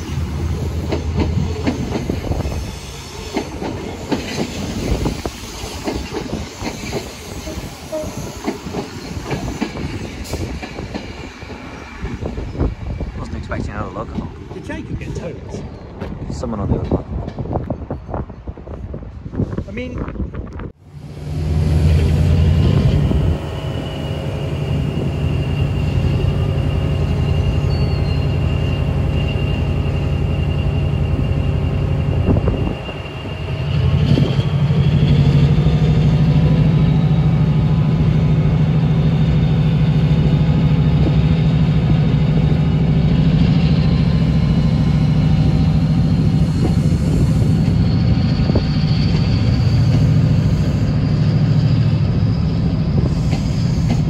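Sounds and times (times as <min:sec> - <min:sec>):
diesel locomotive engine: 0:00.0 - 0:54.0.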